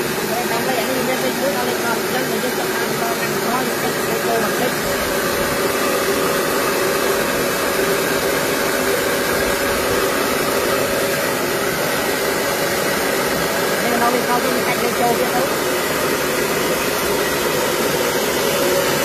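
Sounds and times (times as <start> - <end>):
grain rushing through mill: 0.0 - 19.0
rice mill humming: 0.0 - 19.0.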